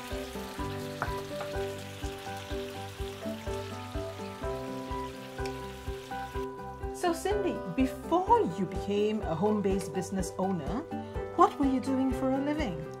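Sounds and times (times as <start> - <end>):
food sizzling in a frying pan: 0.0 - 7.0
background music with steady beat: 0.0 - 13.0.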